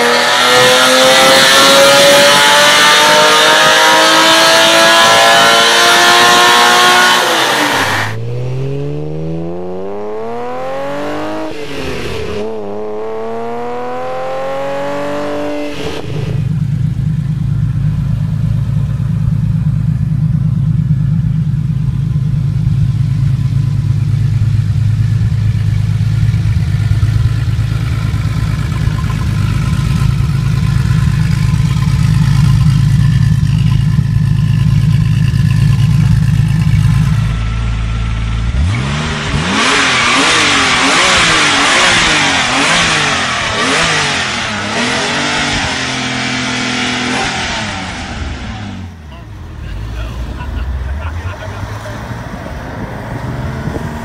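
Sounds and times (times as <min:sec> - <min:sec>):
car engine revving: 0:00.0 - 0:54.0
car engine idling: 0:05.8 - 0:39.3, 0:40.6 - 0:54.0.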